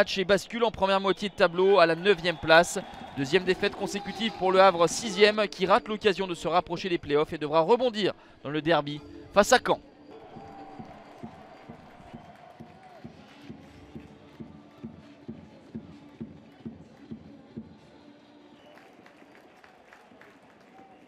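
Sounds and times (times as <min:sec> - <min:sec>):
faint stadium crowd: 0:00.0 - 0:06.0, 0:10.1 - 0:21.0.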